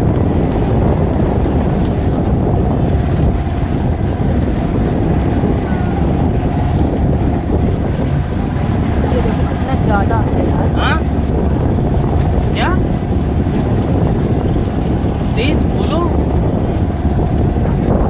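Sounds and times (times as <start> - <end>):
motorboat engine running: 0.0 - 18.0
water rushing and splashing: 0.0 - 18.0
wind on microphone: 0.0 - 18.0.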